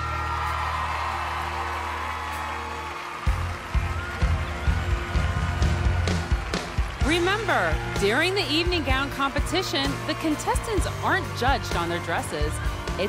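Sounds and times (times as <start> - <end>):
drum beat: 3.3 - 13.0.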